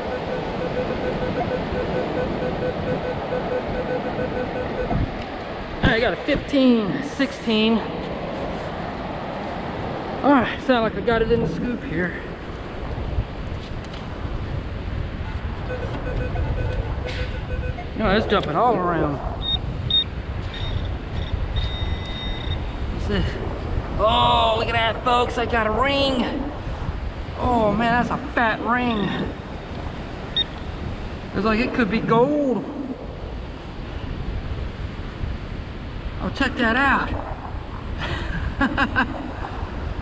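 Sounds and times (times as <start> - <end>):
metal detector beeping: 0.0 - 5.0, 15.6 - 17.9, 19.4 - 22.7, 30.3 - 30.6
metal detector steady tone: 0.0 - 5.0, 19.4 - 22.6
beach surf: 0.0 - 40.0
wind buffeting microphone: 0.0 - 40.0
low rumble: 15.4 - 20.1, 31.2 - 34.8, 36.9 - 40.0
man chuckling: 38.0 - 39.4.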